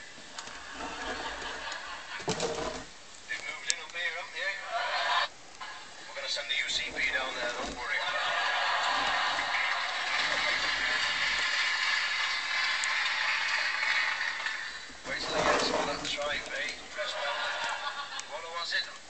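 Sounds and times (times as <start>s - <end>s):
audience laughing: 0.4s - 2.8s, 4.4s - 18.7s
man talking: 3.3s - 4.8s, 6.0s - 8.2s, 15.0s - 17.5s, 18.3s - 19.0s.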